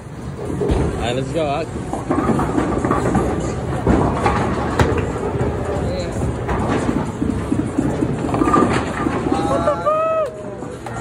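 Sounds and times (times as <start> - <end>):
bowling alley clatter: 0.2 - 11.0
bowling ball rolling on wooden lane: 0.3 - 9.8
person exclaiming: 9.4 - 10.4.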